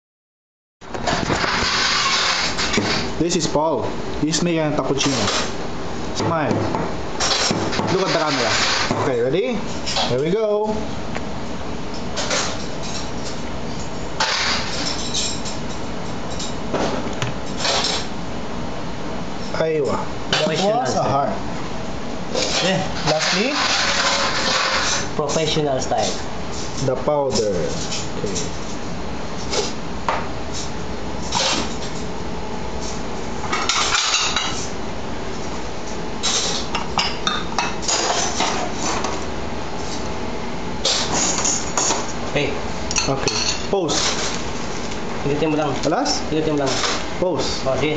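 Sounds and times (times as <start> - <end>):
steady hum: 0.8 - 47.9
cups and spoons clinking: 42.9 - 43.7.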